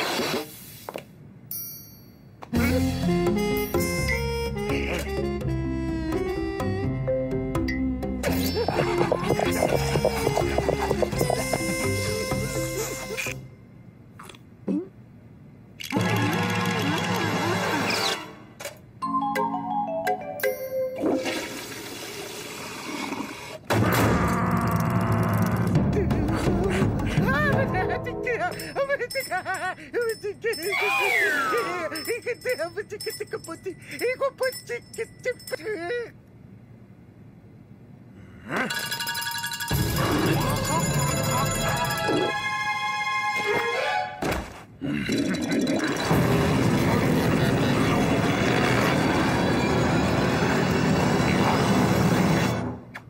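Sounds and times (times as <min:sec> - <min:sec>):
soundtrack music: 0:02.6 - 0:13.4
background music: 0:02.6 - 0:13.5, 0:16.3 - 0:21.5, 0:25.5 - 0:28.8, 0:39.7 - 0:44.2
comic sound effect: 0:08.2 - 0:13.4
toilet flushing: 0:21.0 - 0:23.6.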